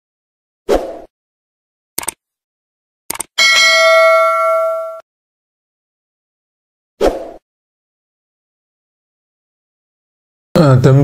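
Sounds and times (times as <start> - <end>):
short clicks: 2.0 - 2.2, 3.1 - 3.4
bright bell chime: 3.4 - 5.0.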